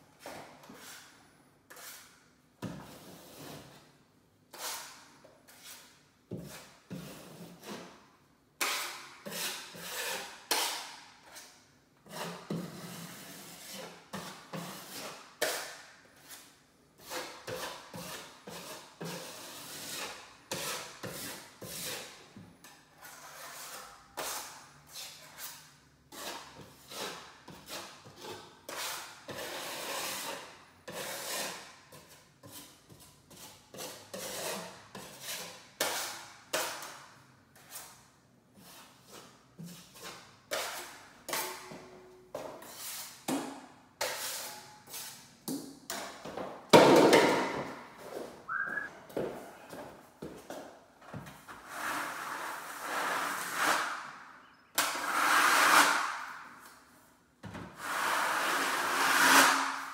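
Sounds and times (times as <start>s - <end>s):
hand tool scraping drywall: 0.2s - 3.9s, 4.5s - 46.4s, 51.2s - 54.2s, 54.8s - 56.8s, 57.7s - 59.9s.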